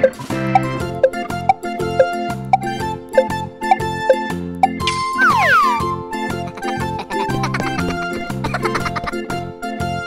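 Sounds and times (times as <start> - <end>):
plucked-string background music: 0.0 - 10.0.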